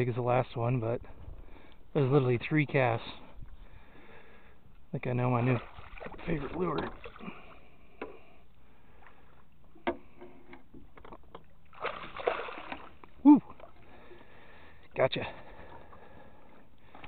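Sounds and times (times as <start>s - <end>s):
fish thrashing and splashing: 5.4s - 7.6s, 11.2s - 14.0s.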